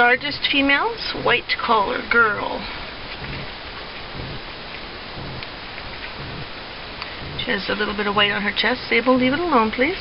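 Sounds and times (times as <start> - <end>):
steady background hiss: 0.0 - 10.0
faint low thuds: 2.6 - 9.5.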